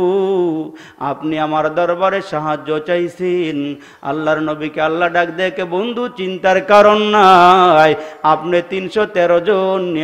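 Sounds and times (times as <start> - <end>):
man chanting sermon: 0.0 - 10.0.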